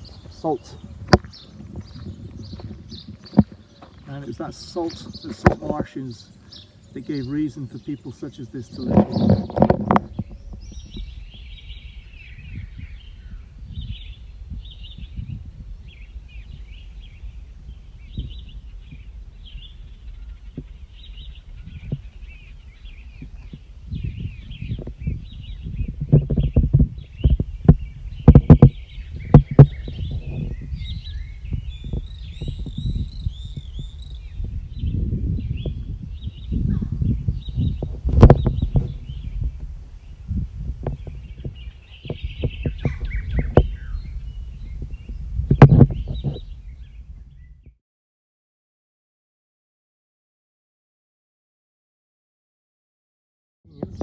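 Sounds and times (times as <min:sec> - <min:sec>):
small birds chirping: 0:00.0 - 0:47.8, 0:53.7 - 0:54.0
wind buffeting microphone: 0:00.0 - 0:47.8, 0:53.7 - 0:54.0.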